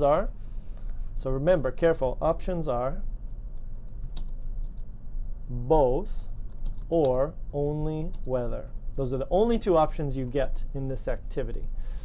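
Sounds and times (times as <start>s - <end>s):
low steady hum: 0.0s - 12.0s
computer keyboard keystrokes: 3.5s - 4.9s, 6.4s - 7.3s.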